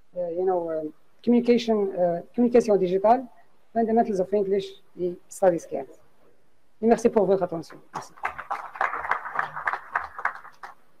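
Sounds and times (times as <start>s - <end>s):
muffled audience applauding: 8.0s - 10.9s.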